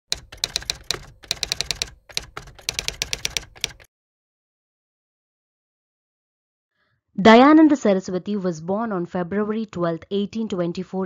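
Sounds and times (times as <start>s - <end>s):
typewriter-like keystroke clicks: 0.1s - 3.9s.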